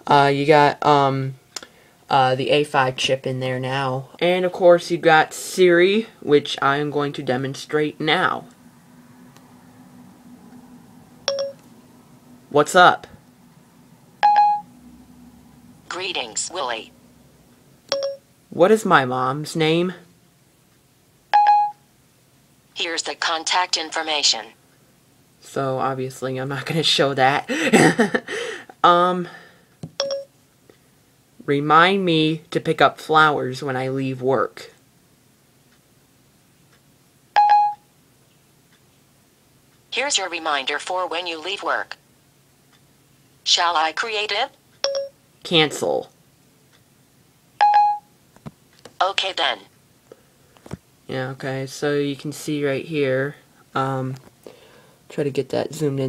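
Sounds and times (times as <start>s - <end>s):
short electronic beep: 11.2s - 11.6s, 14.2s - 14.7s.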